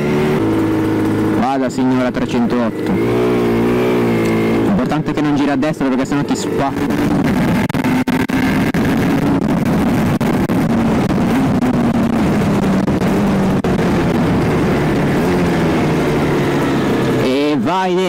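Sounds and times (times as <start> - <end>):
motorcycle engine running: 0.0 - 18.0
wind rush on microphone: 6.3 - 17.2.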